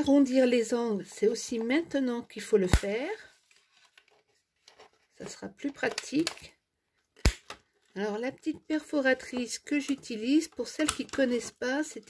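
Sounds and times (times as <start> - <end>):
person speaking: 0.0 - 3.4, 5.2 - 6.6, 7.9 - 12.0.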